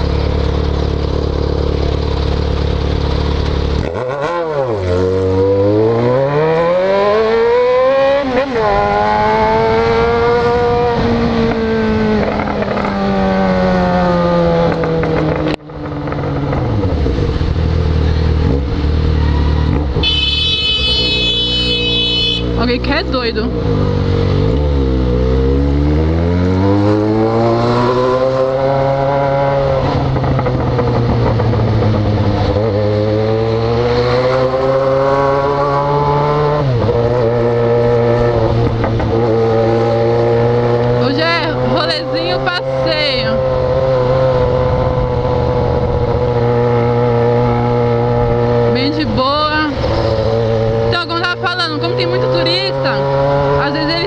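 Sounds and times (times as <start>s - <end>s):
motorcycle engine: 0.0s - 54.0s.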